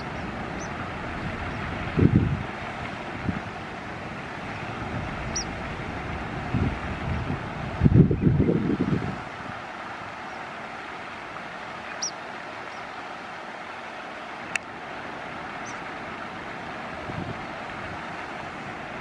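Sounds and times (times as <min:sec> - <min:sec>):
wind buffeting microphone: 0:00.0 - 0:10.2, 0:16.7 - 0:19.0
steady outdoor hiss: 0:00.0 - 0:19.0.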